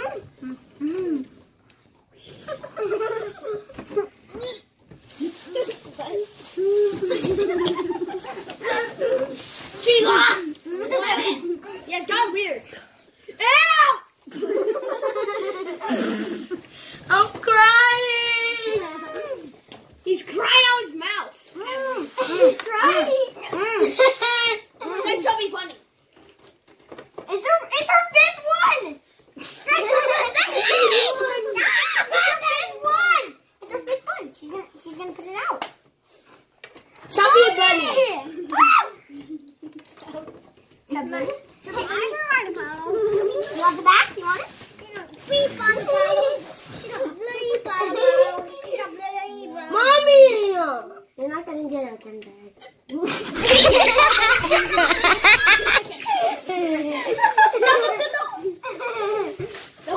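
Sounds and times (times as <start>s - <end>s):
children talking and calling out: 0.0s - 59.9s.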